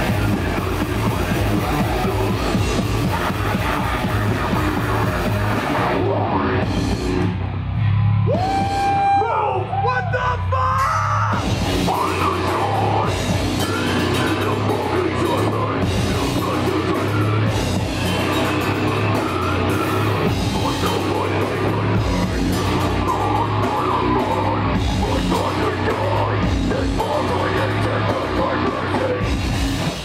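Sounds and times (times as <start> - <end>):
vocals: 0.0 - 6.9, 8.3 - 30.0
drum kit: 0.0 - 9.8, 10.8 - 30.0
distorted guitars: 0.0 - 30.0.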